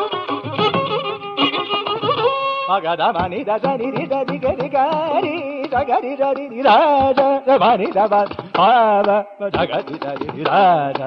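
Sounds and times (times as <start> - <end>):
violin accompaniment: 0.0 - 11.0
person singing ornamented melody: 2.7 - 11.0.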